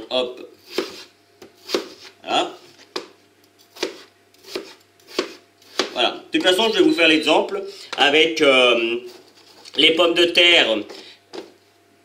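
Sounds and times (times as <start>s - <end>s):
knife slicing potatoes on board: 0.6s - 2.2s, 2.8s - 6.6s.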